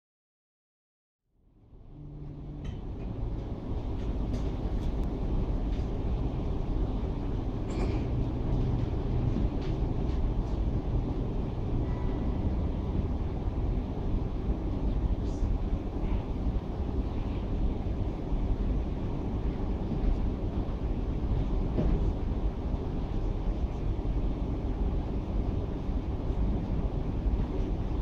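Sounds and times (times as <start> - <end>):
low rumbling noise: 1.3 - 28.0.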